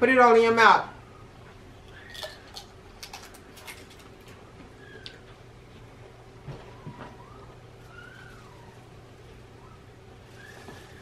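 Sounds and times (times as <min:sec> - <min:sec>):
crisps being chewed: 0:01.9 - 0:04.4.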